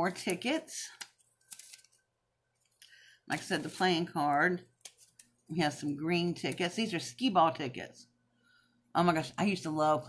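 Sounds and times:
paper rustling: 0:01.0 - 0:02.0, 0:04.8 - 0:05.4.

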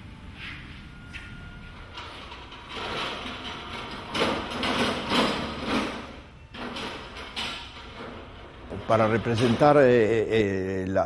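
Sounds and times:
light stand scraping and rattling: 0:01.1 - 0:10.3.

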